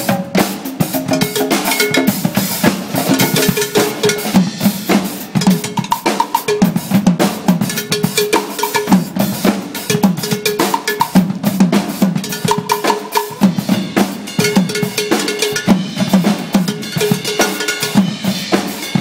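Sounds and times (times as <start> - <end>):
percussion group playing: 0.0 - 19.0
ringing metal cowbell note: 1.0 - 2.4, 3.1 - 4.6, 5.4 - 6.8, 7.7 - 9.1, 9.9 - 11.2, 12.2 - 13.4, 14.3 - 16.0, 16.7 - 18.2.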